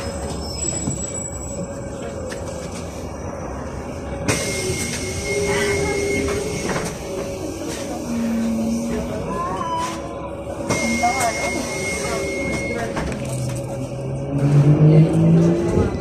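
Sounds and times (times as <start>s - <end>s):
trolleybus cabin hum: 0.0s - 16.0s.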